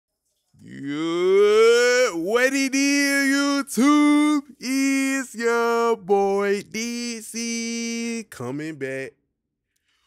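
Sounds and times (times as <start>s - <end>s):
man singing a long note: 0.6s - 9.1s.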